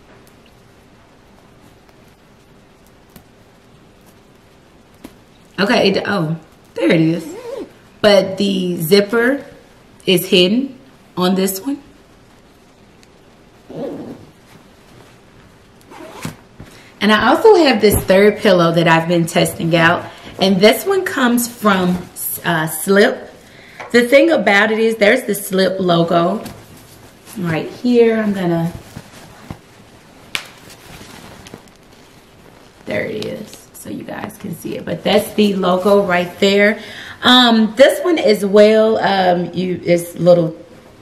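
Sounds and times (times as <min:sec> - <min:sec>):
zipper on pillowcase: 0:07.1 - 0:07.8, 0:13.7 - 0:14.7, 0:15.9 - 0:16.5
satin fabric handling: 0:13.8 - 0:18.5, 0:26.2 - 0:33.6, 0:34.6 - 0:36.8.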